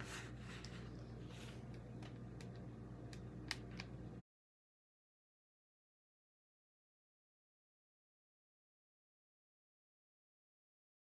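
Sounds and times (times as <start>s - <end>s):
steady low hum: 0.0s - 4.2s.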